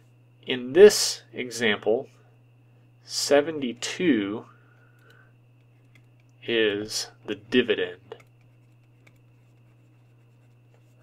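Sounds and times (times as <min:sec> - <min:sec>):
steady low hum: 0:00.0 - 0:11.0
stylus scratching on tablet: 0:08.1 - 0:11.0.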